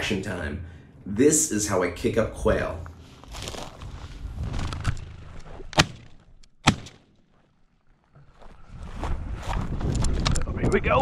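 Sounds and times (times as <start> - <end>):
footsteps through dry brush: 2.8 - 6.3, 7.0 - 9.9
sharp cracks: 4.5 - 7.3.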